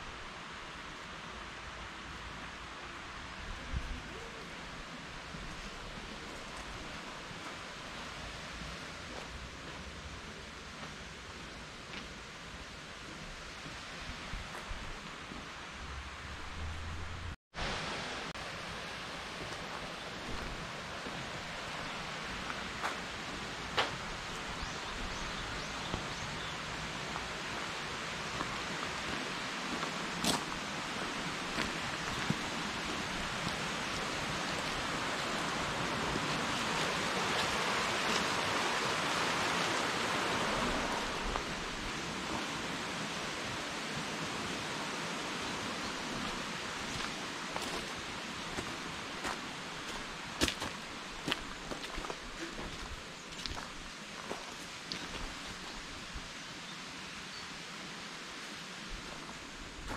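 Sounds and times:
outdoor background hiss: 0.0 - 59.9.

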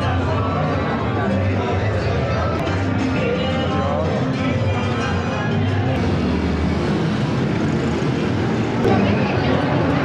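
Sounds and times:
music: 0.0 - 10.0
motorcycles and cars passing: 6.0 - 10.0.

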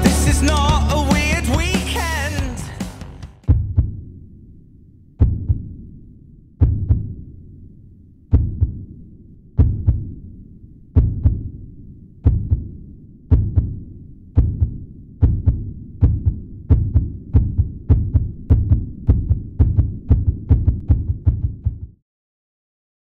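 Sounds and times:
heartbeat double thumps: 0.0 - 4.1, 5.2 - 5.7, 6.6 - 7.2, 8.3 - 8.9, 9.6 - 10.2, 11.0 - 11.6, 12.2 - 22.0.

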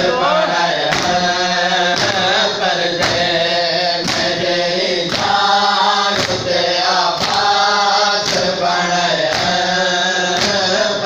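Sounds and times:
men chanting together: 0.0 - 11.0
chest-beating slaps: 0.9 - 1.3, 1.9 - 3.3, 4.0 - 5.4, 6.1 - 7.5, 8.2 - 8.6, 9.2 - 9.6, 10.4 - 10.7.

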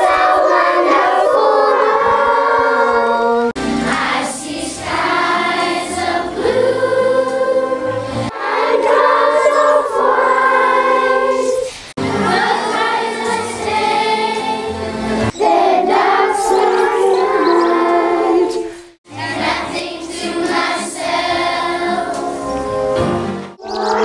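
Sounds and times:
children singing in chorus: 0.0 - 14.7, 15.3 - 22.4, 23.6 - 24.0.

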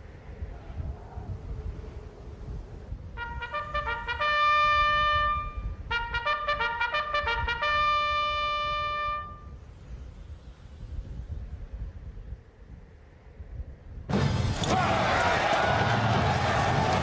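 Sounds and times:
bugle call: 3.2 - 9.5.

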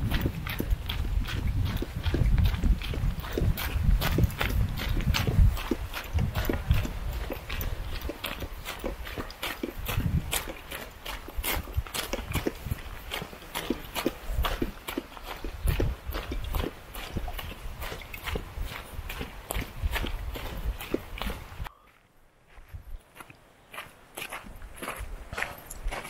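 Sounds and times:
footsteps crunching on gravel: 0.0 - 26.0.

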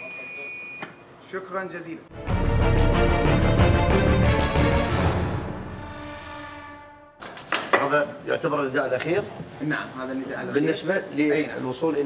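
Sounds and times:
theme music held chord: 2.1 - 7.2.

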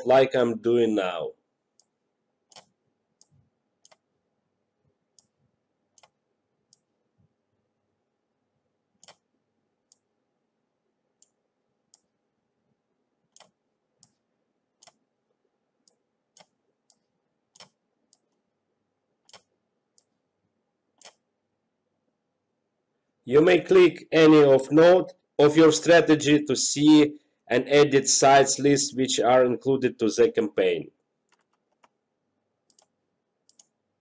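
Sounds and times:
computer mouse clicks: 1.8 - 4.1, 5.1 - 6.9, 9.0 - 9.3, 9.9 - 10.1, 11.2 - 12.1, 13.3 - 14.2, 14.8 - 15.0, 15.8 - 18.4, 19.2 - 20.2, 20.9 - 21.2, 31.2 - 32.0, 32.7 - 33.8.

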